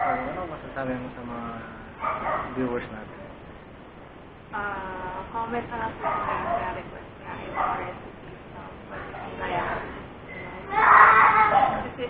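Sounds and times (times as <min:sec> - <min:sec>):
woman talking: 0:04.5 - 0:12.0.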